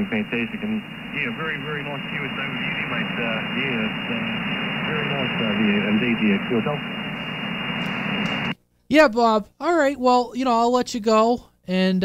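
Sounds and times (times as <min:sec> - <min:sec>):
radio static hiss: 0:00.0 - 0:08.6.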